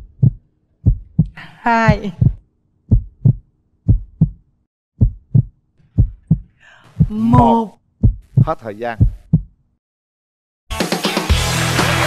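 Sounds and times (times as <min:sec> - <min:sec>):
heartbeat thumps: 0:00.0 - 0:04.4, 0:05.0 - 0:09.6.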